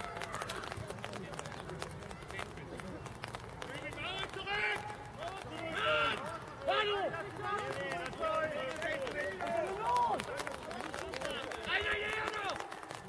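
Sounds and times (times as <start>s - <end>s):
voices shouting and calling: 0.0s - 12.9s.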